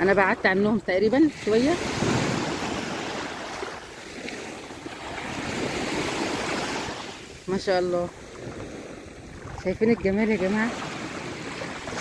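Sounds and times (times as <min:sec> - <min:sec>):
sea waves breaking on beach: 0:00.0 - 0:12.0
wind on microphone: 0:00.0 - 0:12.0.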